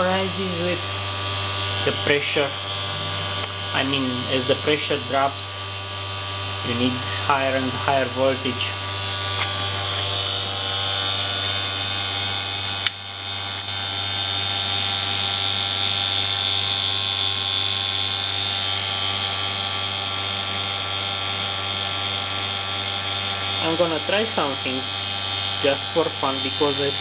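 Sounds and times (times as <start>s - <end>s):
electrical hum and buzz: 0.0s - 27.0s
sharp click: 12.8s - 13.0s.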